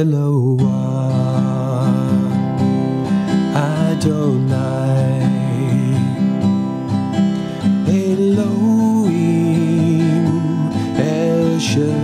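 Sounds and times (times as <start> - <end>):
man singing with vibrato: 0.0 - 12.0
strummed acoustic guitar: 0.0 - 12.0.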